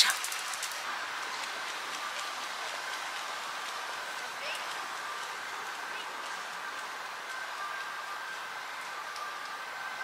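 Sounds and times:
soft outdoor hiss: 0.0 - 10.0.

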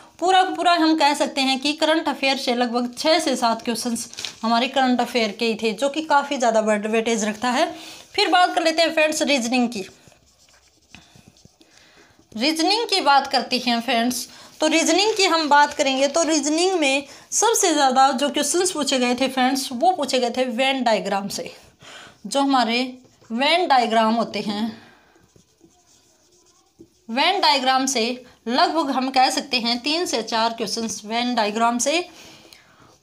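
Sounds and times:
person speaking: 0.2 - 32.1
marker writing on whiteboard: 2.7 - 16.8, 17.5 - 32.0.

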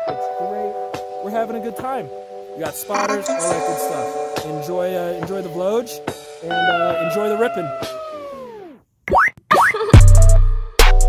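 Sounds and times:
tone bending downward: 6.4 - 8.8.

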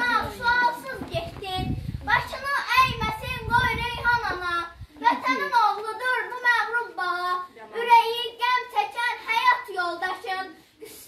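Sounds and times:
girl reciting in sing-song voice: 0.0 - 11.0.

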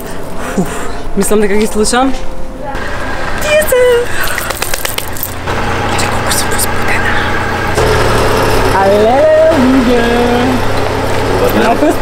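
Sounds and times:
car engine idling: 2.8 - 12.0
hand claps: 4.2 - 5.4.

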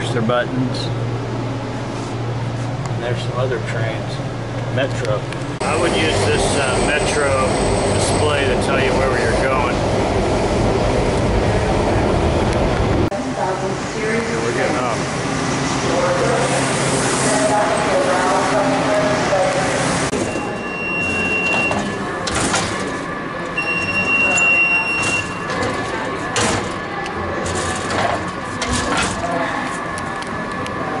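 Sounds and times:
steady low hum: 0.0 - 19.7
crowd voices: 5.6 - 31.0
faregate beeps: 20.1 - 22.1, 23.5 - 25.8.

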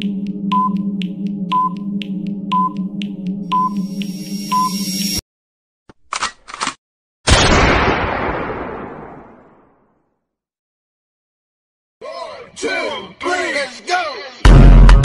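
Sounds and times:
timer tick and beep: 0.2 - 5.1.

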